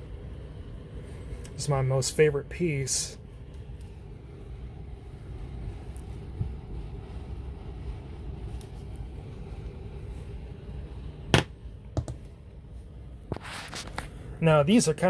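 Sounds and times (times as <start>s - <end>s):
low hum: 0.0s - 14.7s.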